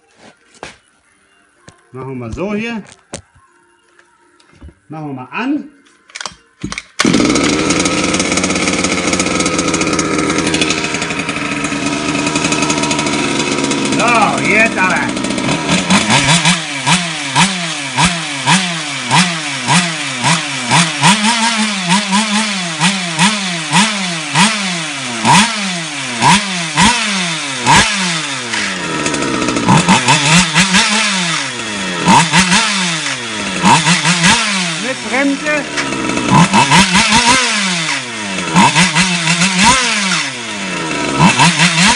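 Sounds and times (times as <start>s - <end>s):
small petrol engine revving: 7.0s - 41.9s.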